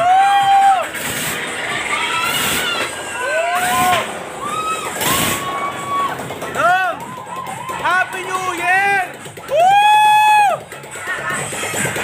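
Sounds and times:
person whooping: 0:00.0 - 0:00.9, 0:09.5 - 0:10.6
music with drum beat: 0:05.1 - 0:12.0.

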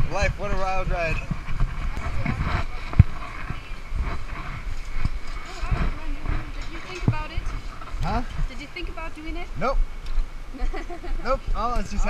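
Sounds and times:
faint voices talking: 0:00.0 - 0:09.9
wind buffeting microphone: 0:00.0 - 0:12.0.

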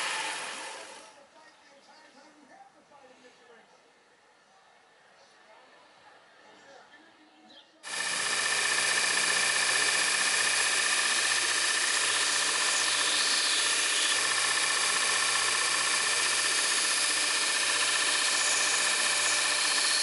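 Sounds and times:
belt sander whining: 0:00.0 - 0:01.0, 0:07.9 - 0:20.0.

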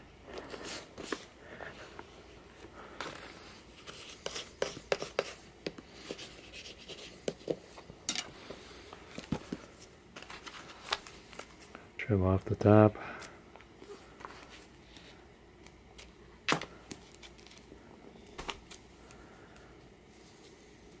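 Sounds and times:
paper rustling: 0:08.4 - 0:11.8.

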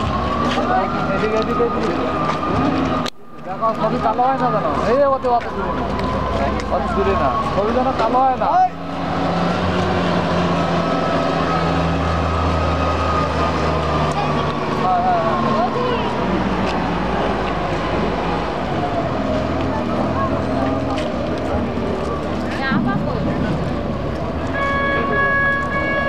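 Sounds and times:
diesel engine running: 0:00.0 - 0:25.7.

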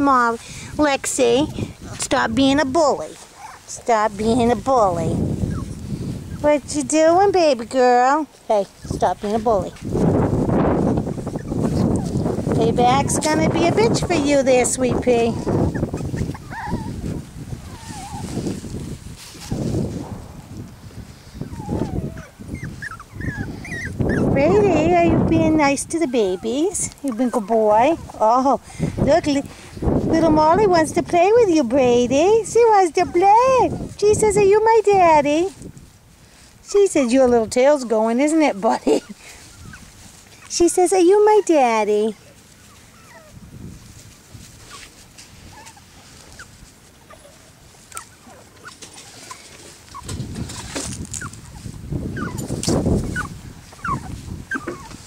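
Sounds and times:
soft scuffling of play: 0:00.0 - 0:55.0
puppy whimpering: 0:03.3 - 0:03.7, 0:05.4 - 0:06.4, 0:10.8 - 0:12.2, 0:13.0 - 0:18.4, 0:21.4 - 0:28.4, 0:32.7 - 0:34.3, 0:36.8 - 0:40.5, 0:41.1 - 0:43.4, 0:45.5 - 0:55.0.

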